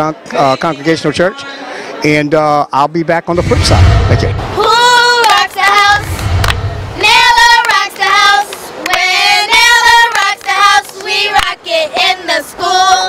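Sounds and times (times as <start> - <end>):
girls singing a chant: 4.5 - 6.2, 7.0 - 13.0.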